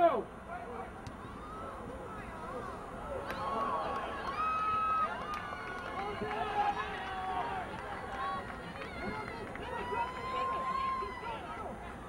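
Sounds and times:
long drawn-out shout: 0:03.1 - 0:11.8.

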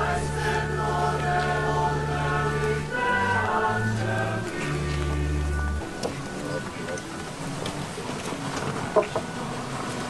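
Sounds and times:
choir holding long notes: 0:00.0 - 0:07.0
low bass notes: 0:00.0 - 0:07.0.

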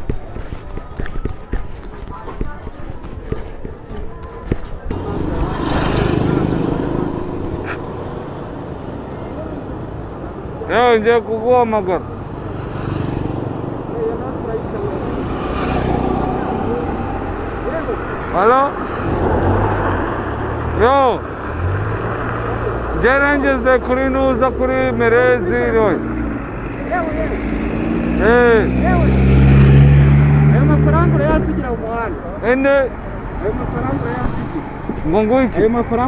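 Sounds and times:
light footsteps: 0:00.0 - 0:07.9
motor vehicle passing: 0:04.9 - 0:36.0.

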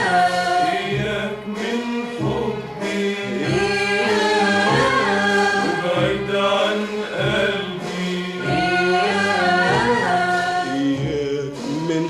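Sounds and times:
orchestra playing ornamented melody: 0:00.0 - 0:12.0.

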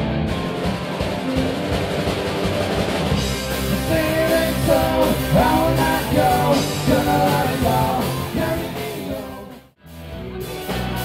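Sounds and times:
drum kit: 0:00.0 - 0:11.0
electric guitar: 0:00.0 - 0:11.0
live rock band playing: 0:00.0 - 0:11.0.

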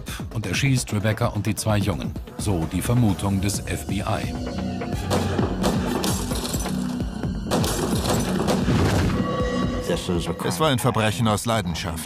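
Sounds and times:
dramatic background music: 0:00.0 - 0:12.0
pistol shots: 0:07.5 - 0:09.0.

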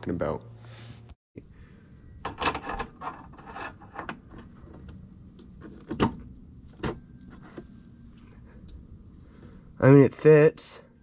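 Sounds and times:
metal parts scraping: 0:02.3 - 0:04.1.

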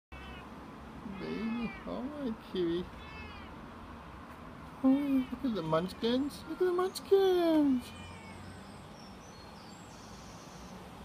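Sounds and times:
cat meowing: 0:00.1 - 0:00.5, 0:01.1 - 0:02.1, 0:02.8 - 0:03.6, 0:05.1 - 0:08.7.

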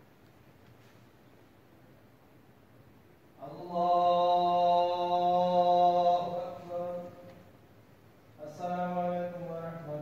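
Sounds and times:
man chanting a long call: 0:03.4 - 0:07.3, 0:08.4 - 0:10.0.

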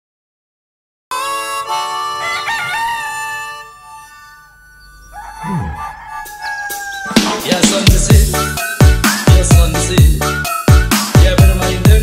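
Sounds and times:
rooster crowing: 0:02.0 - 0:07.8.

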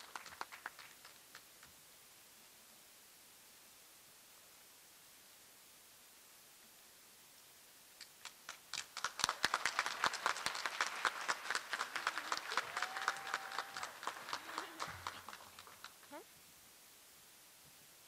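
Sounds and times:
audience applause: 0:00.0 - 0:01.7, 0:08.2 - 0:16.2
person whooping: 0:12.2 - 0:15.1.

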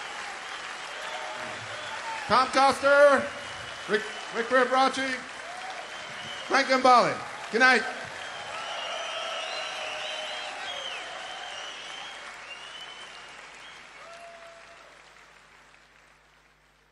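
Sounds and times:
audience applauding: 0:00.0 - 0:16.9.

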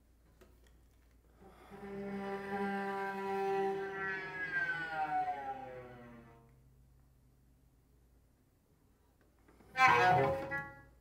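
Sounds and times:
bowed solo cello: 0:01.5 - 0:06.6, 0:09.6 - 0:11.0.

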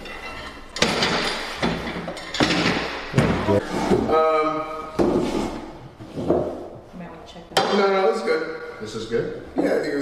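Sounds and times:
table clattering: 0:00.0 - 0:04.2, 0:04.9 - 0:06.7.

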